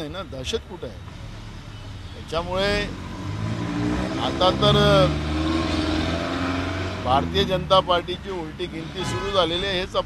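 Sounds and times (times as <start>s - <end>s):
vehicle engine pulling away: 1.0s - 10.0s
person's voice: 4.2s - 5.2s, 7.1s - 10.0s.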